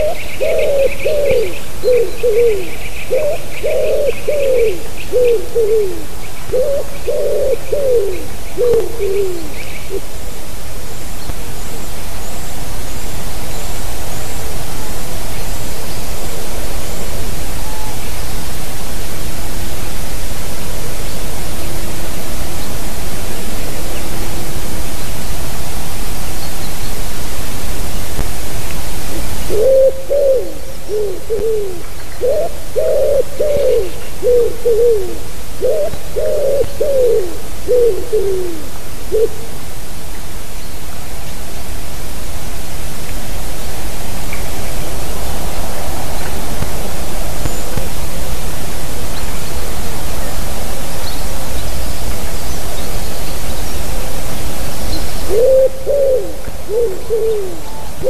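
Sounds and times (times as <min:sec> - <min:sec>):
pigeon cooing: 0:00.0 - 0:10.2, 0:29.1 - 0:39.6, 0:55.2 - 0:58.0
steady loud hiss: 0:00.0 - 0:58.0.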